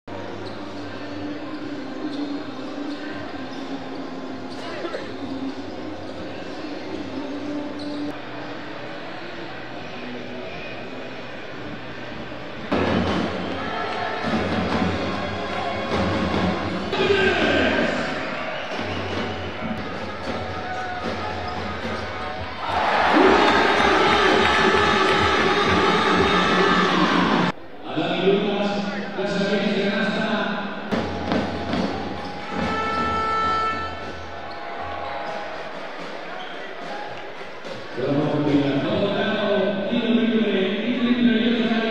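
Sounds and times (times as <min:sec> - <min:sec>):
music: 0:00.0 - 0:27.8, 0:28.6 - 0:41.9
crowd chatter: 0:00.1 - 0:41.9.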